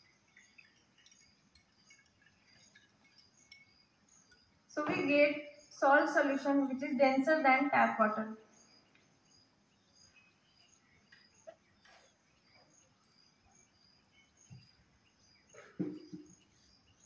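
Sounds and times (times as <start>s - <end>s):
soft knock: 15.8s - 16.3s.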